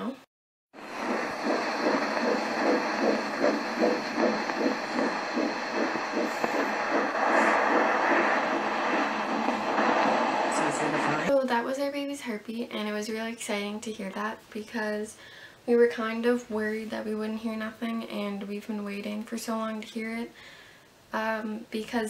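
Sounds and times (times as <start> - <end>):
fetal heartbeat on doppler: 0.8 - 11.3
steady hiss: 0.8 - 11.3.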